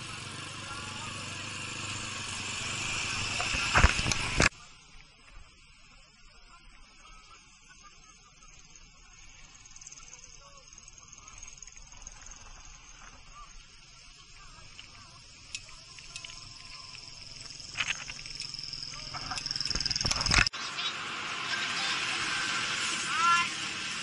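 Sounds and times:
loud rush of noise: 0:00.0 - 0:04.6, 0:20.1 - 0:24.0
high-pitched insect buzz: 0:01.0 - 0:23.5.

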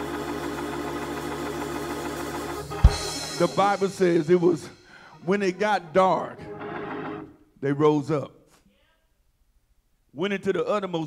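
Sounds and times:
church organ sustained chord: 0:00.0 - 0:07.4.

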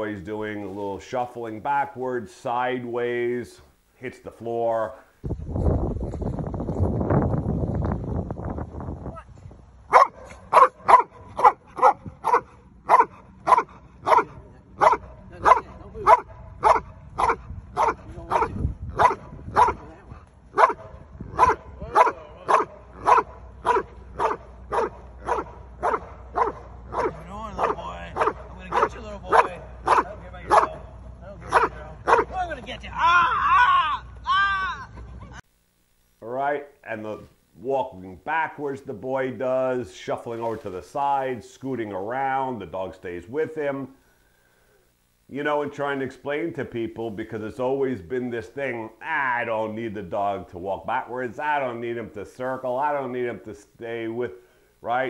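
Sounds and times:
dog barking: 0:09.9 - 0:19.9, 0:20.5 - 0:32.4.

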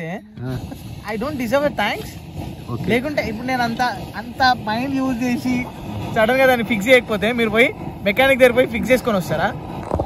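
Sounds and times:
man talking: 0:00.0 - 0:09.6.

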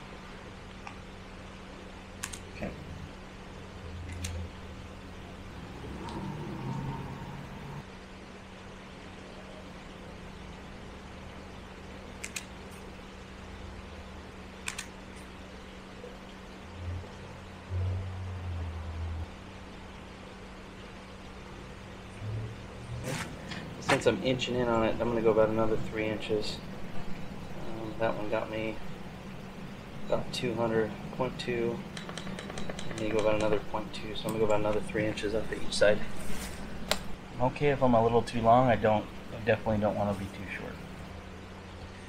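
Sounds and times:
steady low hum: 0:00.0 - 0:42.0
wire snipping clicks: 0:12.2 - 0:12.5.

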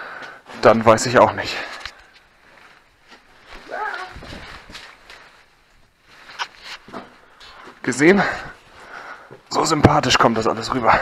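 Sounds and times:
man's voice: 0:09.5 - 0:11.0.

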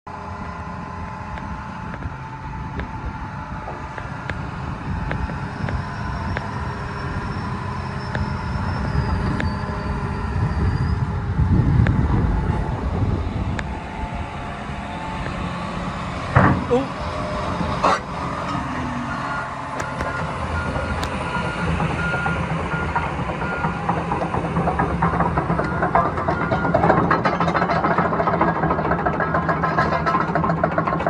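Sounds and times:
diesel excavator engine idling: 0:00.1 - 0:31.0.

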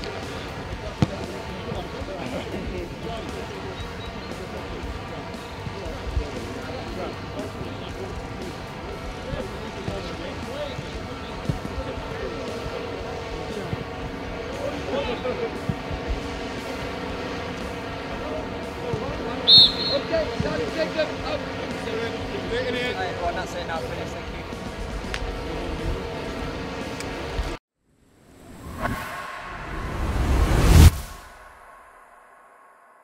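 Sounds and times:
whistle blast: 0:19.4 - 0:20.2.

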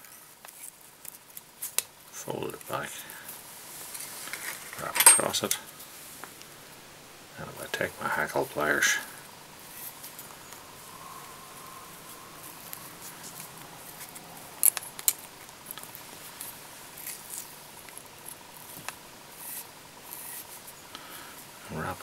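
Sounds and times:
faint handling ticks and rustles: 0:00.0 - 0:06.8, 0:07.4 - 0:22.0.

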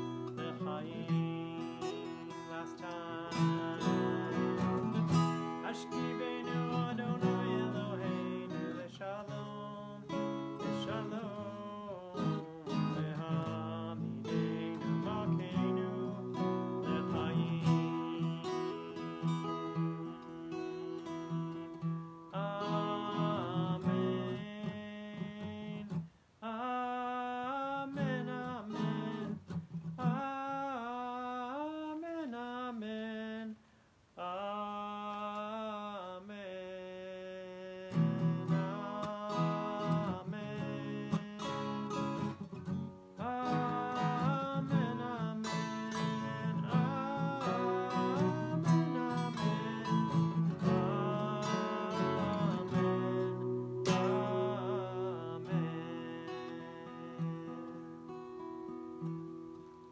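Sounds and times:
acoustic guitar strumming: 0:00.0 - 0:31.7, 0:37.7 - 0:59.9
man singing: 0:00.0 - 0:33.6, 0:34.2 - 0:58.2.

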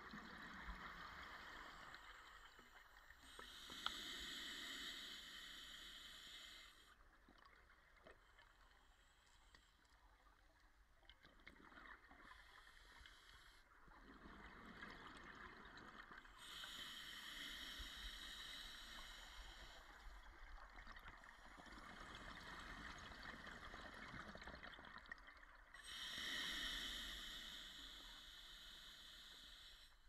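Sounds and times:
faint hiss: 0:01.1 - 0:07.0, 0:25.8 - 0:30.0
underwater exhaled bubbles: 0:13.7 - 0:27.6.

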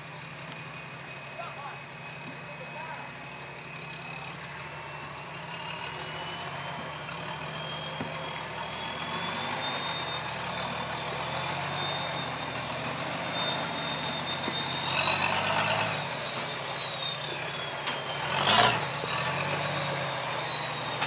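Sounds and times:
engine running at low revs: 0:00.0 - 0:21.0.

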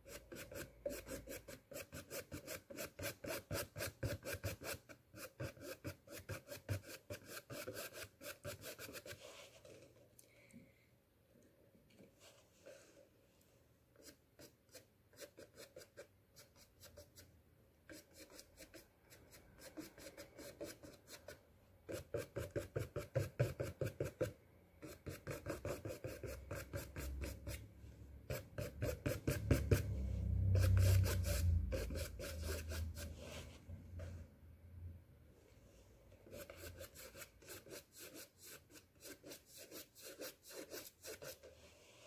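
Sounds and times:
paintbrush scratching on canvas: 0:00.0 - 0:09.9, 0:17.9 - 0:27.6, 0:28.3 - 0:33.6, 0:36.2 - 0:42.0.

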